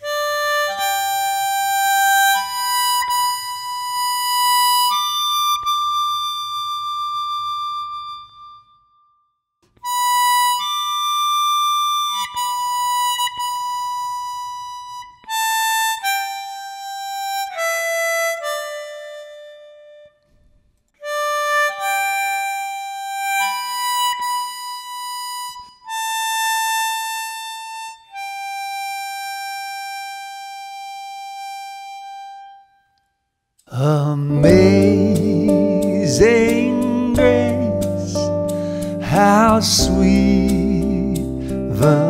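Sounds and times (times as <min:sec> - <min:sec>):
reedy wind instrument melody: 0:00.0 - 0:08.7, 0:09.8 - 0:20.1, 0:21.0 - 0:32.9, 0:33.8 - 0:42.0.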